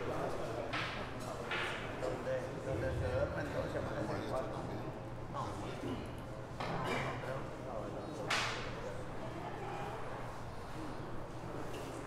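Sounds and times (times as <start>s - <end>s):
murmur of distant voices: 0.0s - 12.0s.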